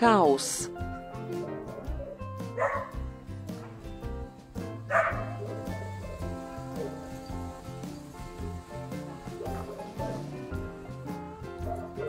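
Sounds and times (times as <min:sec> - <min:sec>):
background music with beat: 0:00.6 - 0:12.0
dog barks: 0:01.7 - 0:03.7, 0:04.8 - 0:07.3, 0:09.3 - 0:10.3, 0:11.6 - 0:12.0.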